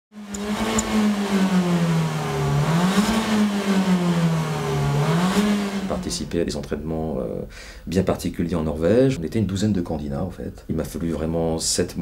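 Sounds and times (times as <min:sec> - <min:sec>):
car engine revving: 0:00.1 - 0:06.3.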